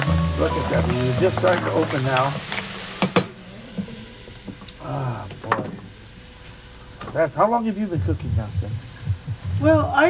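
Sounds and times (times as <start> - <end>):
mussels sizzling in a wok: 0.0 - 7.0.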